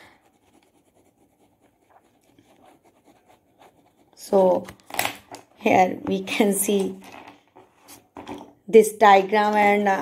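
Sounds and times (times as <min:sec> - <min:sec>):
pen scratching on paper: 0:00.0 - 0:04.8.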